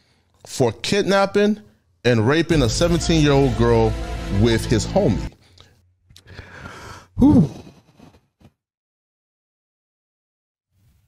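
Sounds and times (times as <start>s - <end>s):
person exhaling: 5.4s - 7.8s.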